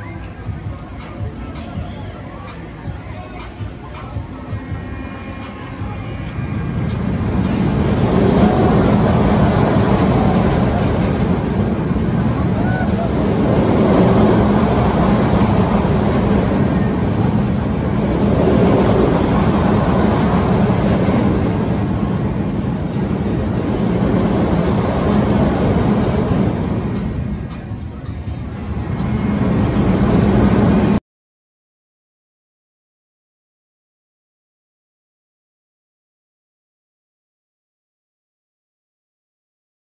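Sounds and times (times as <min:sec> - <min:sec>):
thrill ride rushing: 0:00.0 - 0:31.0.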